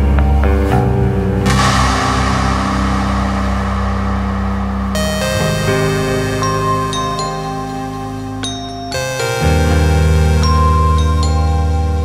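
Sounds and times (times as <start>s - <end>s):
low synth chord: 1.4s - 12.0s
bell-like tones: 1.5s - 9.6s.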